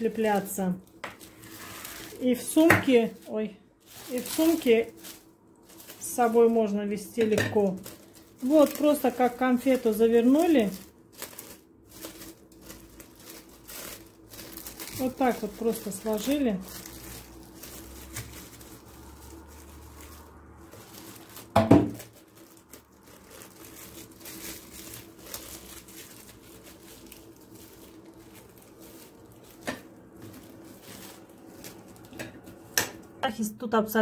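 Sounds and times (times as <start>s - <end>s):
cling film crinkling: 0.0s - 33.2s.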